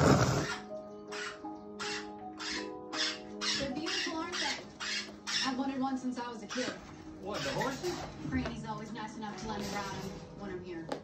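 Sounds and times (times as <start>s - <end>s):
cockatoo call: 0.0s - 5.6s
film soundtrack music: 0.0s - 10.9s.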